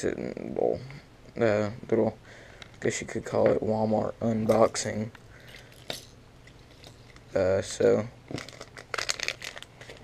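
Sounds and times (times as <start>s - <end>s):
plastic packaging crinkling: 4.5s - 7.3s, 8.3s - 10.0s.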